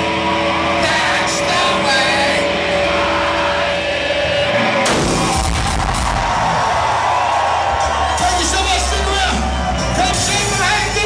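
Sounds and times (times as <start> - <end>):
hard rock band playing: 0.0 - 11.0
drums and cymbals crash: 4.7 - 6.7.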